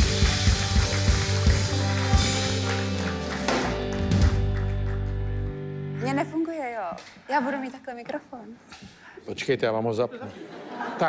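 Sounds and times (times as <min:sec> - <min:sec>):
drum hits: 0:00.0 - 0:04.7
bass notes: 0:00.0 - 0:06.4.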